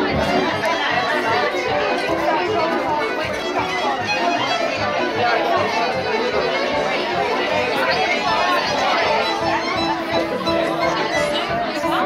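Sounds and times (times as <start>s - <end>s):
chatter of overlapping voices: 0.0s - 12.0s
live violin music: 0.0s - 12.0s.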